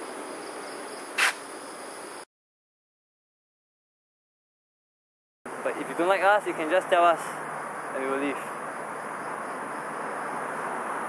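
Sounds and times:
crickets and insects chirping: 0:00.0 - 0:02.3, 0:05.5 - 0:11.0
brief hissing burst: 0:01.2 - 0:01.4.

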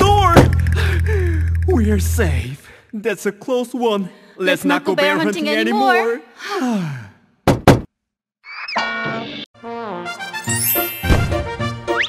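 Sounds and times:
sharp knocks: 0:07.5 - 0:07.9
bright music with rising glide: 0:09.7 - 0:12.0.

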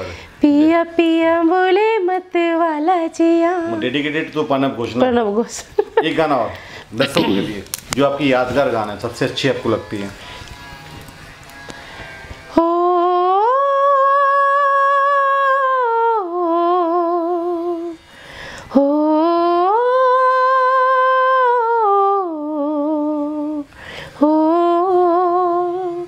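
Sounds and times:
woman breathing: 0:00.0 - 0:00.4, 0:06.5 - 0:07.0, 0:10.2 - 0:10.8, 0:11.7 - 0:12.5, 0:18.0 - 0:18.8, 0:23.7 - 0:24.2
woman singing wordless melody: 0:00.2 - 0:06.0, 0:12.4 - 0:26.0.

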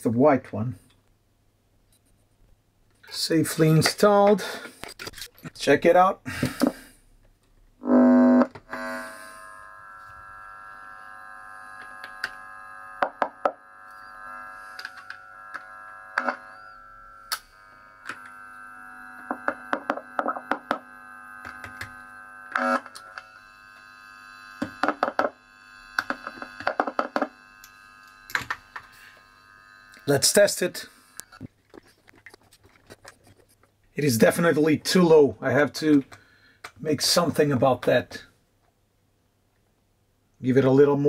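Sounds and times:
screwdriver clicks and knocks: 0:19.3 - 0:20.8, 0:21.4 - 0:22.0, 0:24.6 - 0:25.4, 0:26.0 - 0:27.3, 0:28.3 - 0:28.9.

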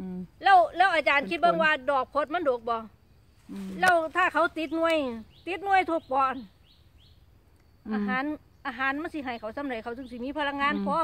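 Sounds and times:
woman speaking: 0:00.0 - 0:02.9, 0:03.5 - 0:06.5, 0:07.8 - 0:11.0
small bird chirping: 0:00.0 - 0:11.0.

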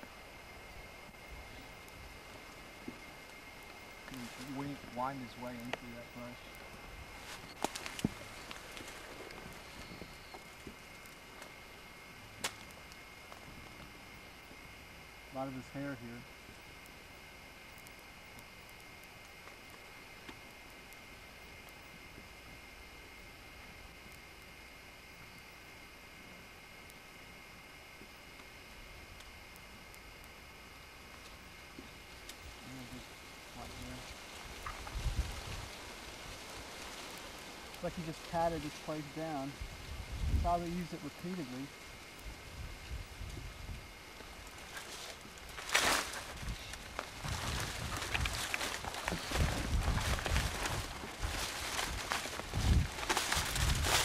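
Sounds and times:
steady hiss: 0:00.0 - 0:54.0
dry twigs crackling and snapping: 0:01.0 - 0:14.7, 0:16.4 - 0:22.6, 0:31.0 - 0:38.9, 0:43.2 - 0:54.0.

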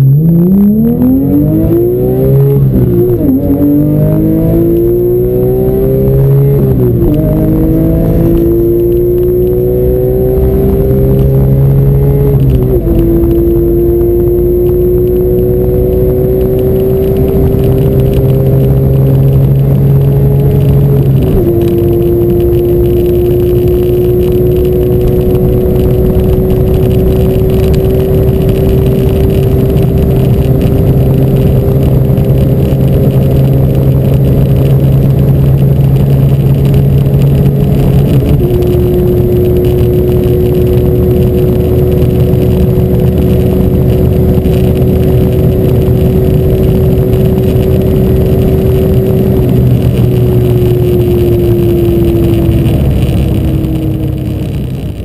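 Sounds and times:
car engine at high revs: 0:00.0 - 0:55.0
road and wind noise: 0:00.0 - 0:55.0.

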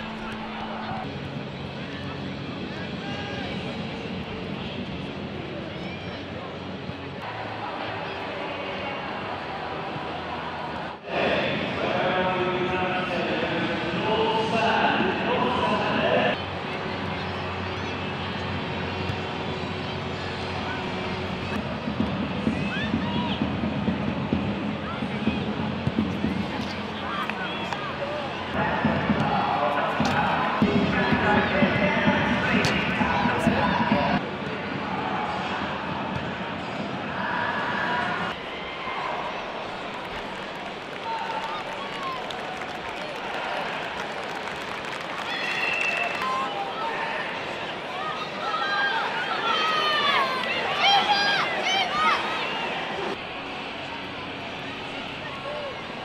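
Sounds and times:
voices calling and chattering: 0:00.0 - 0:44.1, 0:45.2 - 0:56.0.

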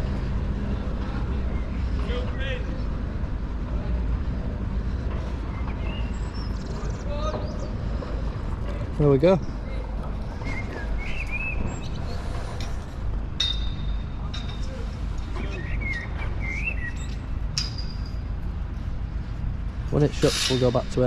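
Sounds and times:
birds chirping: 0:00.0 - 0:03.2, 0:03.8 - 0:12.8, 0:13.6 - 0:18.3.

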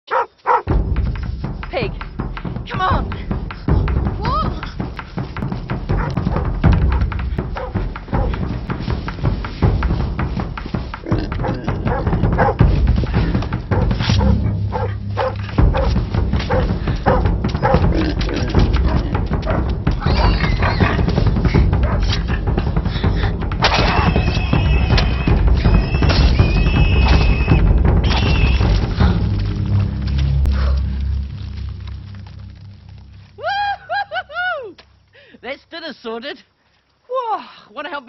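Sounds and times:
dog barking: 0:00.1 - 0:00.7, 0:11.9 - 0:12.6, 0:13.8 - 0:17.8
dogs barking: 0:00.1 - 0:00.7, 0:05.9 - 0:08.4, 0:11.2 - 0:12.6, 0:13.7 - 0:18.1, 0:18.8 - 0:21.1
film music: 0:00.1 - 0:35.2.

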